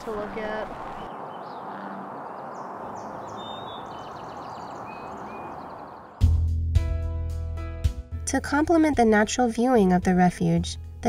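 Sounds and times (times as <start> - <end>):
rain hissing: 0.0 - 1.3
faint bird chirps: 0.7 - 6.2.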